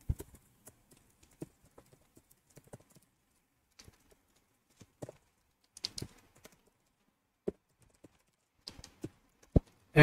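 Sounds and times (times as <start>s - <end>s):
faint computer keyboard typing: 0.0s - 9.9s.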